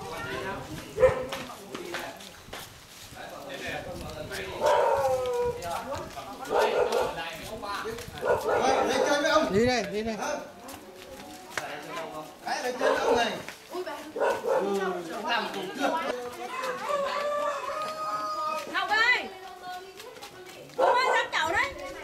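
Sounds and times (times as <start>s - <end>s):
people talking and calling out: 0.0s - 22.0s.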